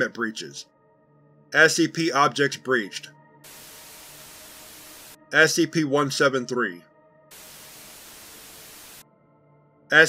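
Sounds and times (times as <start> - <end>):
white noise static: 3.5 - 5.2, 7.3 - 9.0.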